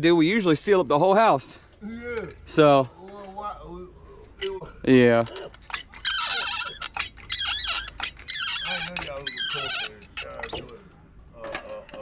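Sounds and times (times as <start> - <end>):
people talking: 8.7 - 10.8, 11.4 - 12.0.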